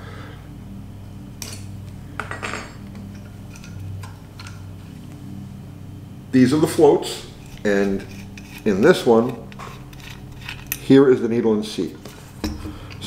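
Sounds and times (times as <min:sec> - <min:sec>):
steady low hum: 0:00.0 - 0:13.0
metal parts clinking: 0:01.4 - 0:04.6, 0:07.4 - 0:10.9.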